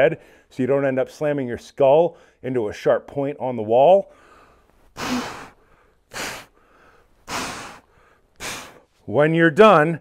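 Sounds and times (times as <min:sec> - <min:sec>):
man exhaling hard: 0:05.0 - 0:08.9.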